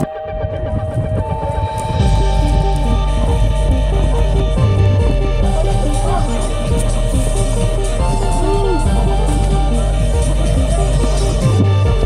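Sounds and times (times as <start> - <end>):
background music held tones: 0.0 - 12.0
dense low rumble: 0.0 - 12.0.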